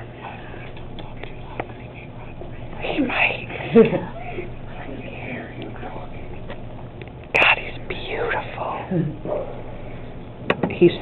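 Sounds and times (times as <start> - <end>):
person whispering: 0.0 - 6.5, 7.4 - 9.1
person laughing softly: 3.5 - 4.5.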